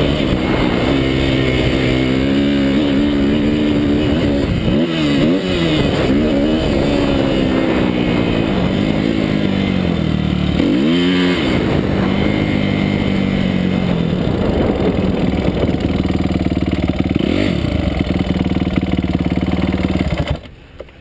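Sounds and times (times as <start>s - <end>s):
dirt bike engine running: 0.0s - 20.5s.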